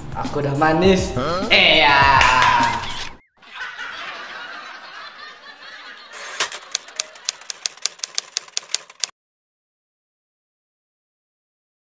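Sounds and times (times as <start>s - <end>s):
laughter: 1.6s - 7.7s
typewriter key clicks: 6.3s - 9.1s.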